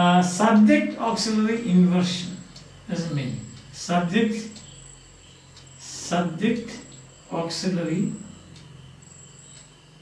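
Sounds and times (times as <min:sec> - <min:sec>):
high insect trill: 0:00.0 - 0:10.0.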